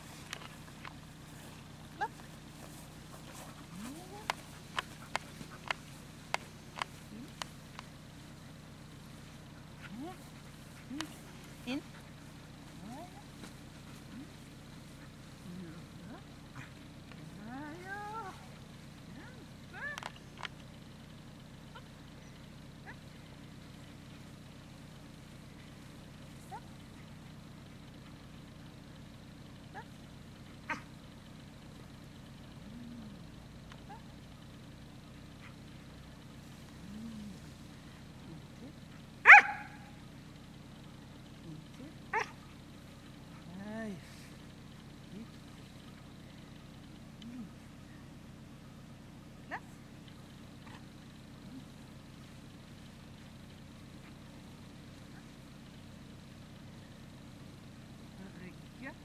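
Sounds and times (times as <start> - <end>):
dog yelping: 1.9 - 2.3, 19.2 - 20.2, 26.4 - 26.7, 29.7 - 30.0, 30.7 - 30.9, 39.2 - 40.0, 42.1 - 42.4, 49.5 - 49.7
dog whining: 42.1 - 42.3.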